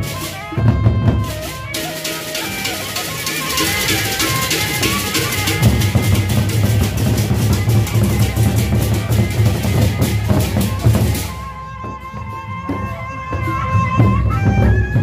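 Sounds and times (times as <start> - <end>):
barrel drums beating: 0.0 - 12.8
cymbals clashing: 0.0 - 14.7.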